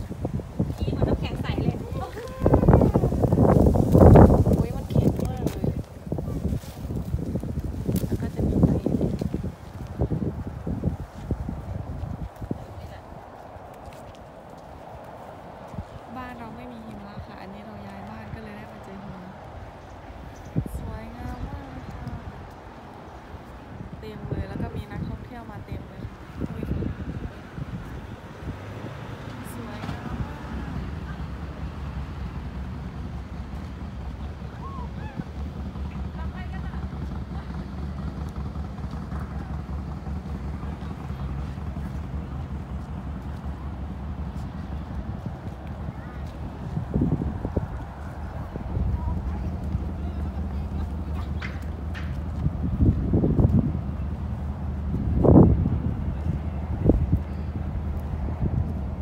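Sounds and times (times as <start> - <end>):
footsteps on pavement: 0.0 - 59.0
wind buffeting microphone: 0.0 - 59.0
outdoor background hum: 29.3 - 59.0.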